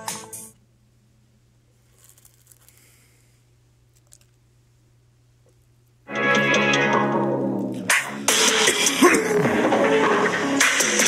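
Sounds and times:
steady low hum: 0:00.6 - 0:06.1
cards being shuffled: 0:01.9 - 0:03.0, 0:03.9 - 0:04.4.

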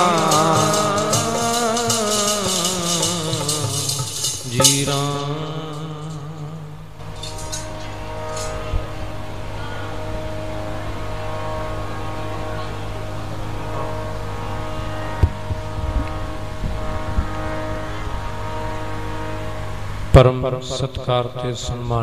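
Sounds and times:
person singing: 0:00.0 - 0:12.9
harmonium sustained chord: 0:00.0 - 0:22.0
steady low hum: 0:00.0 - 0:22.0.

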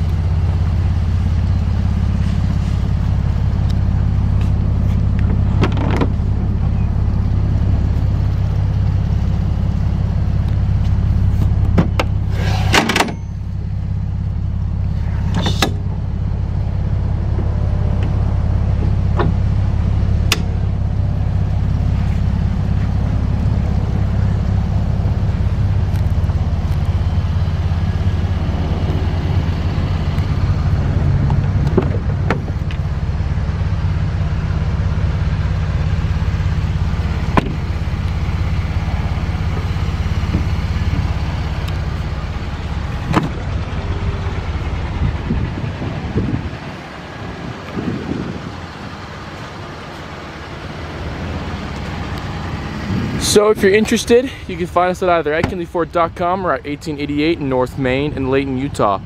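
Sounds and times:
truck engine idling: 0:00.0 - 0:59.0.

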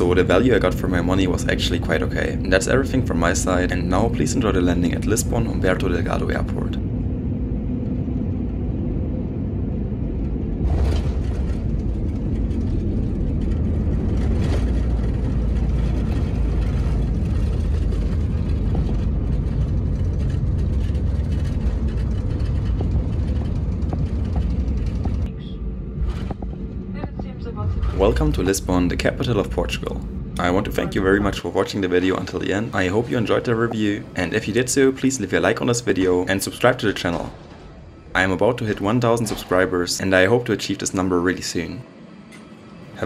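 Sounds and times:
airplane cabin rumble: 0:00.0 - 0:43.0.

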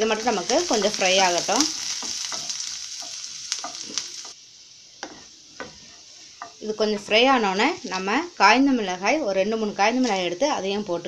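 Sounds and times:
spices sizzling in hot oil: 0:00.0 - 0:11.0
wooden spatula scraping pan: 0:05.0 - 0:07.3.

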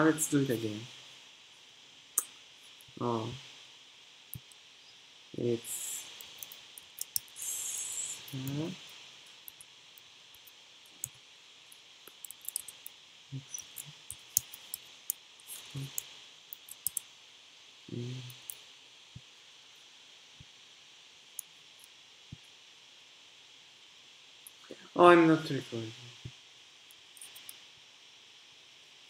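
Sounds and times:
computer keyboard typing: 0:16.6 - 0:17.0.

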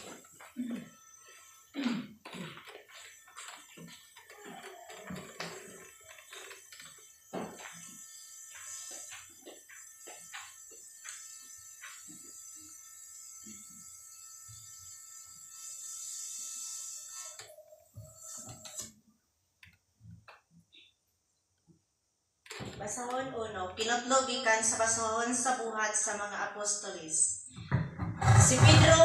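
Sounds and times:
footsteps on tiled floor: 0:00.0 - 0:12.4.

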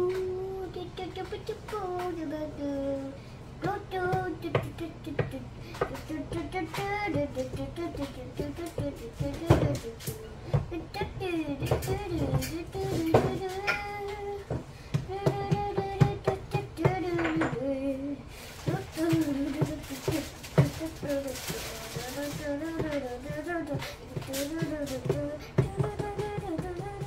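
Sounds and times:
person humming a wordless tune: 0:00.0 - 0:27.0.

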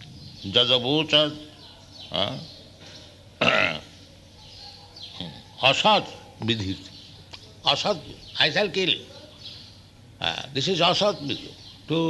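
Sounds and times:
man's throaty vocal sound: 0:03.4 - 0:03.8.

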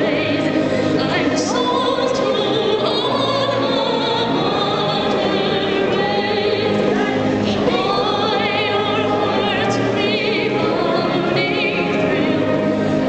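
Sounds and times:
choir singing slowly: 0:00.0 - 0:13.0.

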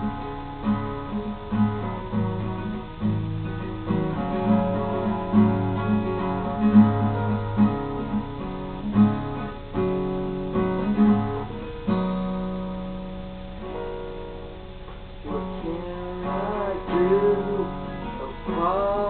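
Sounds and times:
acoustic guitar strumming chords: 0:00.0 - 0:19.0.

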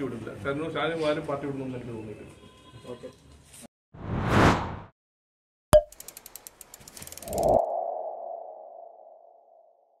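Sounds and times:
rapid ticks: 0:05.9 - 0:07.6.

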